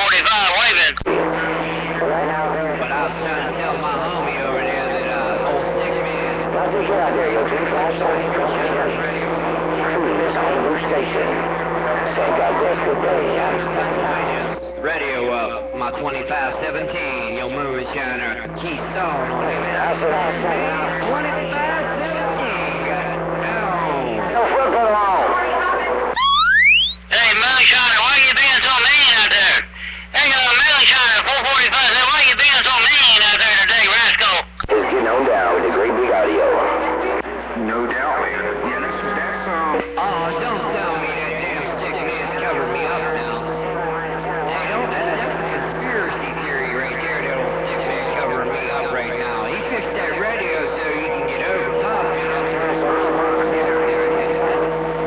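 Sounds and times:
garbled radio voices: 0.0 - 55.0
strong radio station with rising whistle: 0.0 - 55.0
heterodyne whistles: 26.2 - 27.1.

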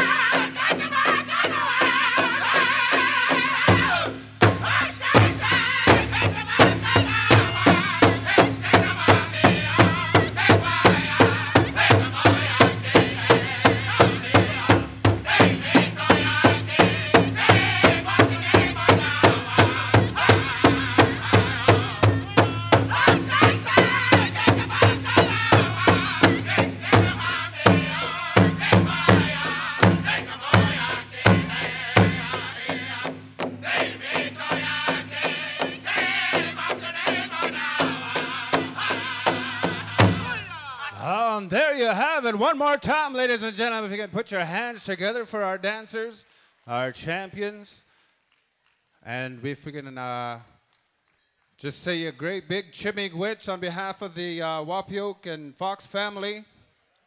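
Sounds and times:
big drum steady beat: 0.0 - 40.5
singers singing together: 0.0 - 41.2.

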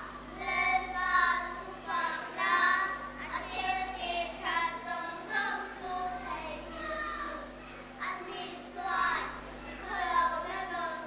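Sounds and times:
young girls singing together: 0.0 - 11.0.

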